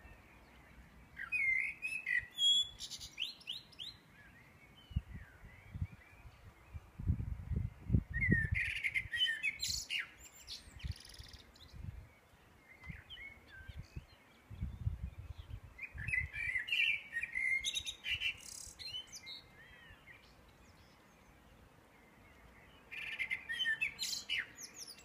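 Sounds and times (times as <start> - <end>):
songbirds singing: 0.0 - 25.0.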